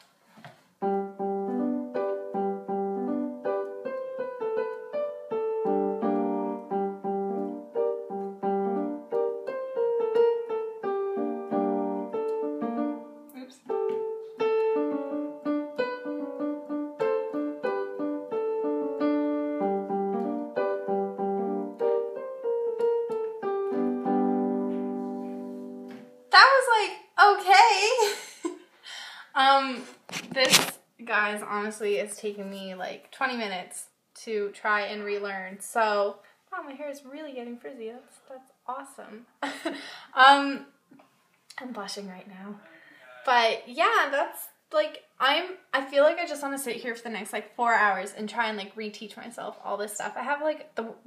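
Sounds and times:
slow piano melody: 0.8s - 26.3s.

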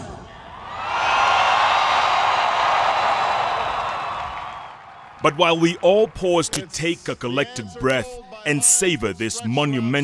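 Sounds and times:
crowd cheering and clapping: 0.6s - 6.5s.

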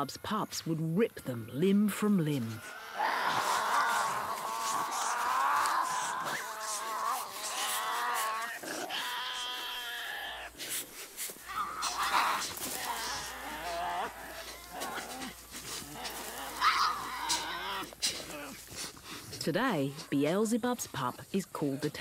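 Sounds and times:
animals whining and squabbling: 2.5s - 22.0s.

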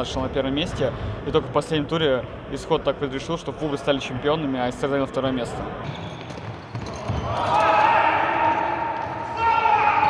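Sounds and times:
players shouting: 7.2s - 10.0s.

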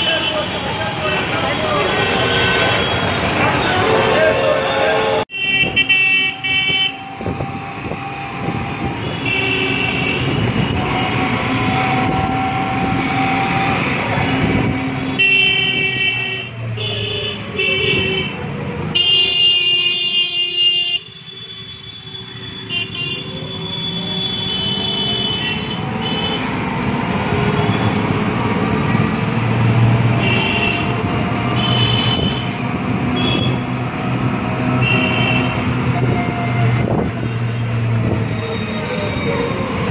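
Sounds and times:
vehicle horns honking: 0.0s - 4.3s, 5.3s - 7.4s, 8.8s - 13.1s, 14.2s - 26.5s, 30.1s - 33.8s, 34.6s - 36.6s
engines and road noise: 0.0s - 39.9s.

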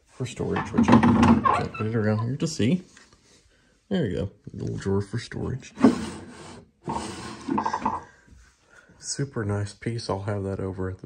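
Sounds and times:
wooden drawer sliding: 0.4s - 2.2s, 5.7s - 8.1s.

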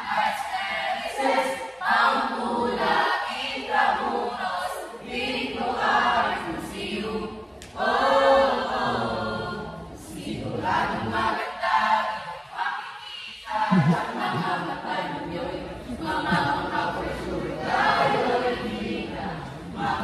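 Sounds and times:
group singing a cappella: 0.0s - 20.0s.

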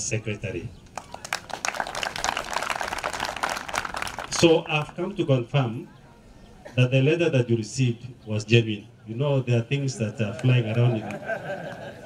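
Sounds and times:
audience clapping: 0.9s - 4.9s, 10.2s - 12.0s.

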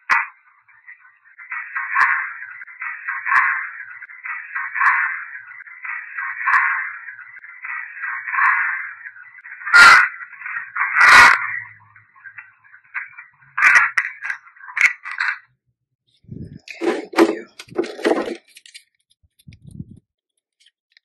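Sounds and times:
loud crackles: 0.0s - 15.5s
recorder handling knocks and rustles: 16.7s - 18.6s.

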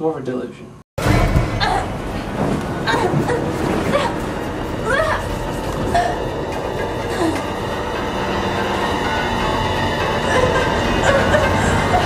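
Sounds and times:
dense rumbling drone: 1.0s - 12.0s.

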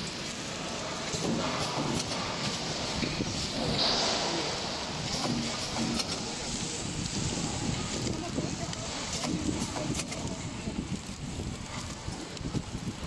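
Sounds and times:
packaging machine running: 0.0s - 11.1s
machine clicks: 5.0s - 6.6s.

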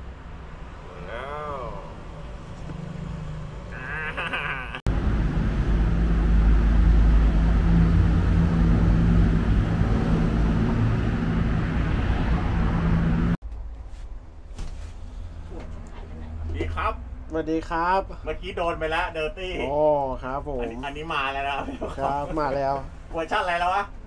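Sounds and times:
street noise: 0.0s - 24.0s.

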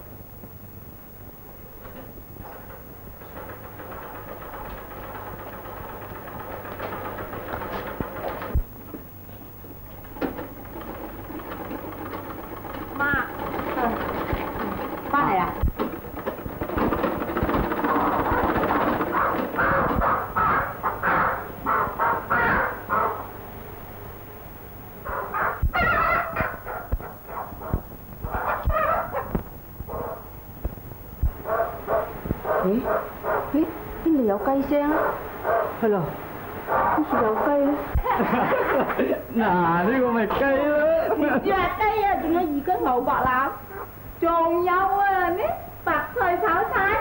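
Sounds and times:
chickens squawking and clucking: 9.9s - 23.4s, 25.1s - 27.3s, 28.3s - 29.4s.

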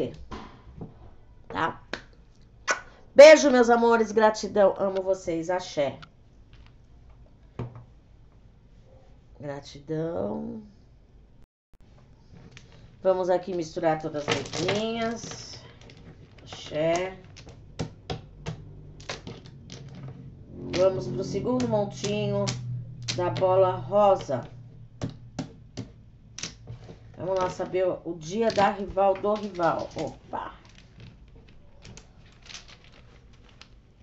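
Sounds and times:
stones clicking in cloth pouch: 28.4s - 33.8s.

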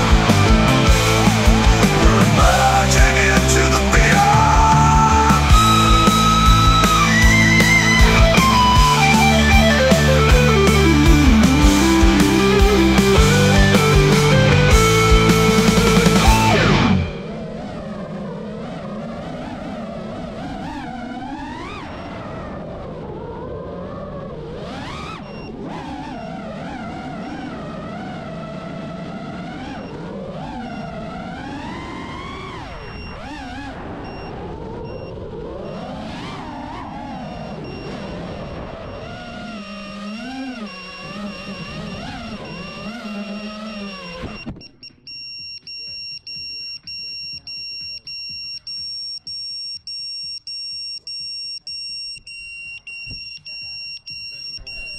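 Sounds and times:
quadcopter motors whining: 35.6s - 49.2s
electronic buzzer beeping: 37.4s - 54.9s.

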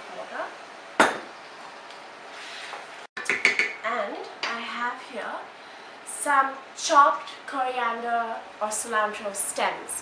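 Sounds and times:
spoon knocking against pan: 3.2s - 3.8s.

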